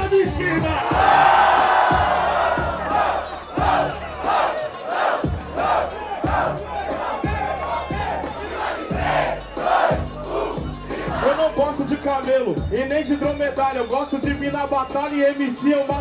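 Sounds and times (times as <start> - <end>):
beat with kick drum: 0.0 - 4.6, 5.2 - 13.6
crowd shouting in rhythm: 0.5 - 11.6
crowd cheering: 0.5 - 12.0.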